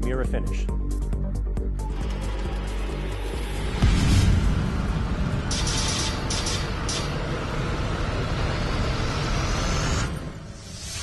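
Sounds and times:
deep rumble with rising whoosh: 0:02.7 - 0:11.0.

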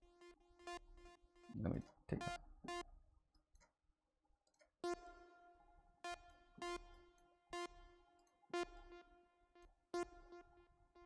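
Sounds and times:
quiet synthesizer line: 0:00.2 - 0:03.0.

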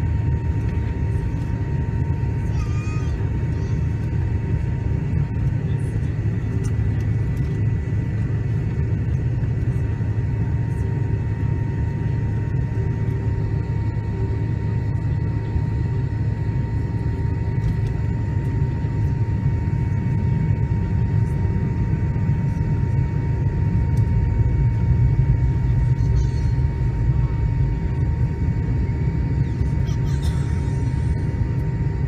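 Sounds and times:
jet engine whine: 0:00.0 - 0:32.0
jet engines rumbling in cabin: 0:00.0 - 0:32.0.

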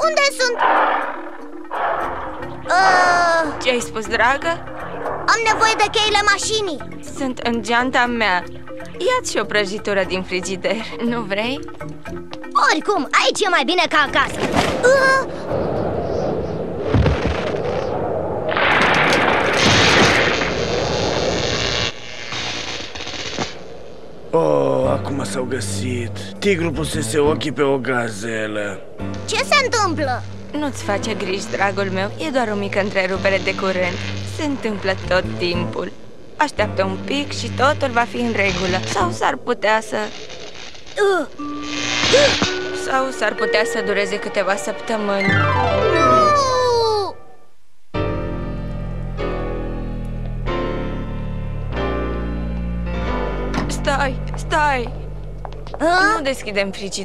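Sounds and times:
wind blowing: 0:00.0 - 0:41.0, 0:42.0 - 0:47.6
rushing storm effect: 0:00.1 - 0:07.2, 0:14.5 - 0:30.8
cartoon music cue: 0:41.4 - 0:47.4.

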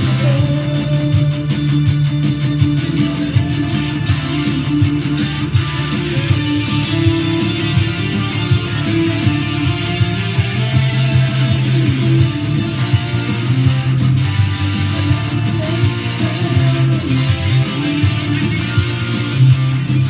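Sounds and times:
band recording with bass: 0:00.0 - 0:20.0
electric guitar: 0:00.0 - 0:20.0.

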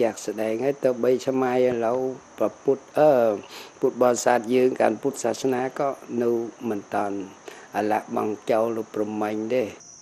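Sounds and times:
elderly man speaking: 0:00.0 - 0:09.8.

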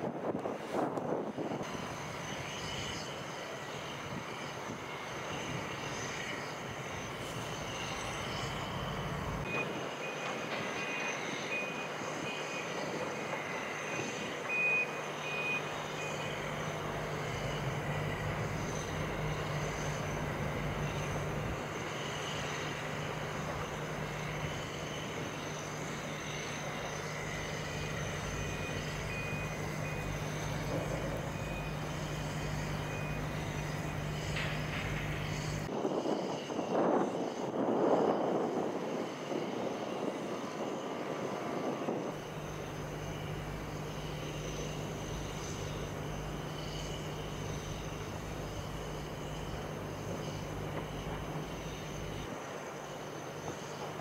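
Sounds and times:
distant construction machinery hum: 0:00.0 - 0:54.0
reversing alarm beeping: 0:07.5 - 0:35.7.

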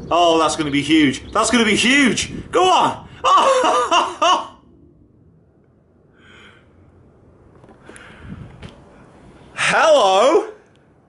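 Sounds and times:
man laughing: 0:03.0 - 0:04.6.

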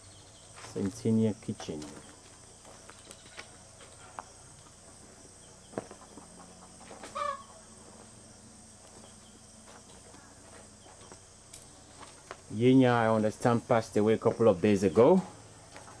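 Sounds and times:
chicken clucking: 0:05.8 - 0:07.6.

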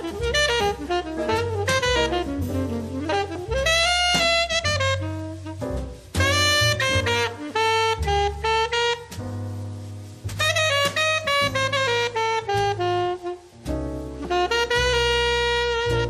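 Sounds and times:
alto saxophone long notes: 0:00.0 - 0:09.2, 0:10.4 - 0:16.0
double bass: 0:00.0 - 0:16.0.

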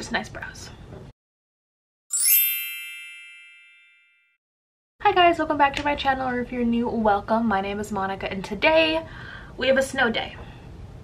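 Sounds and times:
bell-like chime ringing: 0:02.1 - 0:04.4.

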